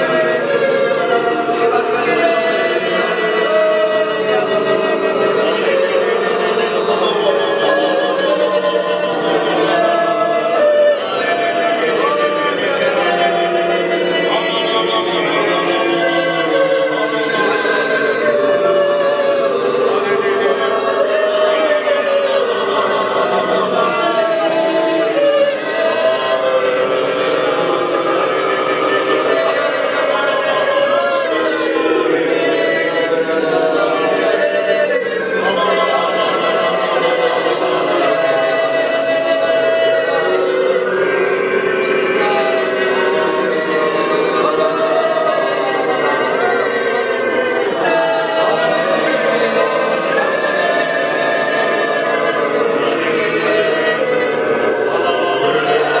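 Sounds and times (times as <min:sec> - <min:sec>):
group of voices singing in harmony: 0:00.0 - 0:56.0.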